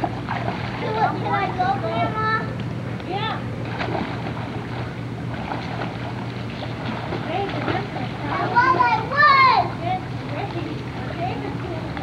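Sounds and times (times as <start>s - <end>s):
arms splashing in water: 3.6s - 8.6s.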